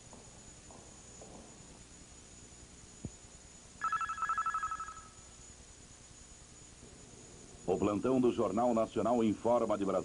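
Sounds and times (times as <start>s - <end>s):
warbling electronic ring tone: 3.8s - 5.4s.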